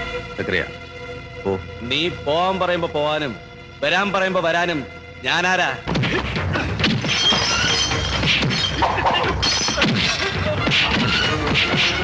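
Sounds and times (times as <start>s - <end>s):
crockery and glass shattering: 6.9s - 10.3s.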